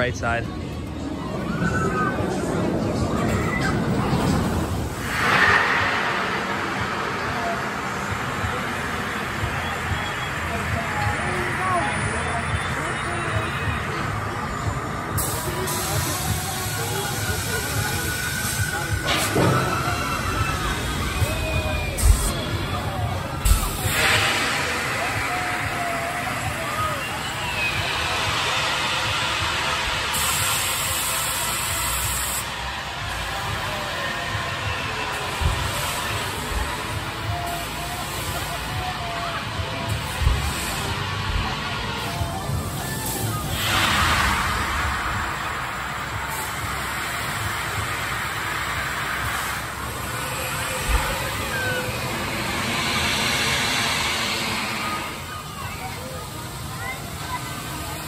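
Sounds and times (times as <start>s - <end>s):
steady rushing noise: 0.0s - 58.0s
voices: 0.0s - 58.0s
whooshing rush of falling ride: 0.0s - 58.0s.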